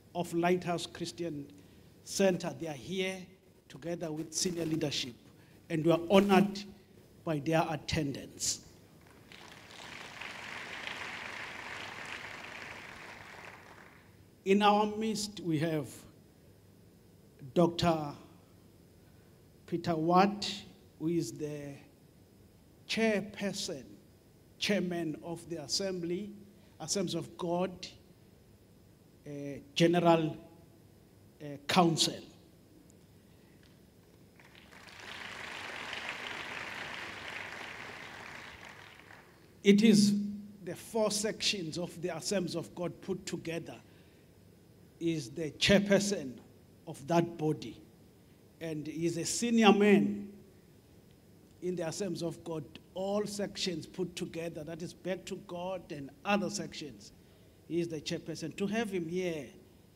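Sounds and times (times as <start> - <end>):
audience applauding: 9.0 - 14.1, 34.4 - 39.5.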